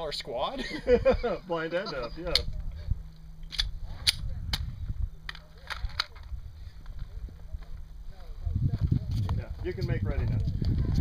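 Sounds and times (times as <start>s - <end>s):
low rumble: 0.8s - 11.0s.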